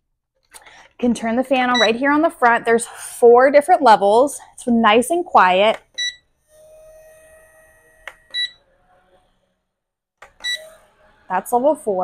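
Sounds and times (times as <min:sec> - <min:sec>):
faint motor hum: 0:00.8 - 0:09.5, 0:10.3 - 0:12.0
fan control panel beeping: 0:01.7 - 0:02.0, 0:05.7 - 0:06.2, 0:08.1 - 0:08.6, 0:10.3 - 0:10.7.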